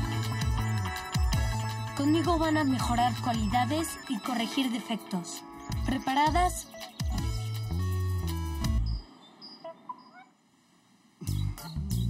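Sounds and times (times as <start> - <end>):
music: 0.0 - 9.0, 11.2 - 12.0.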